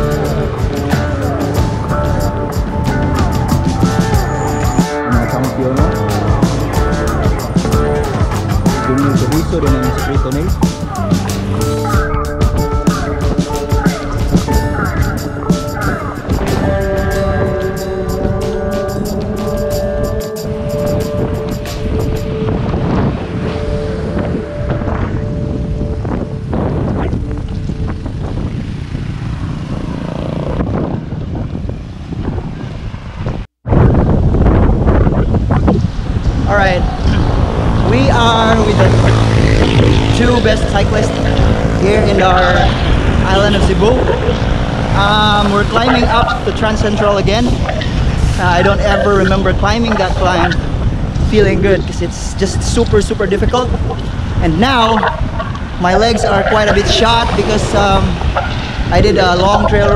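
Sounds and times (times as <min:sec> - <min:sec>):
background music: 0:00.0 - 0:28.0, 0:37.2 - 0:50.6
wind rushing over microphone: 0:00.0 - 0:59.9.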